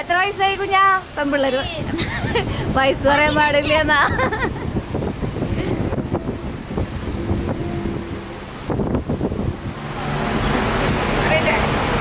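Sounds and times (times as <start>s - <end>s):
microphone handling rumble: 1.8s - 11.1s.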